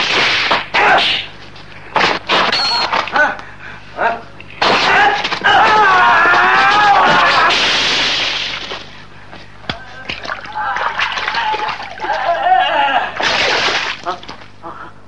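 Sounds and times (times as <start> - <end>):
people shouting and grunting: 0.7 - 1.3, 4.6 - 7.7, 9.7 - 13.3
water splashing: 10.1 - 12.4, 13.2 - 14.5.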